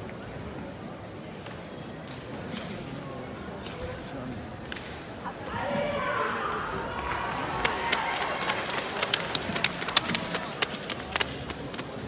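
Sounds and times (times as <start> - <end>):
low murmur of hall: 0.0 - 12.0.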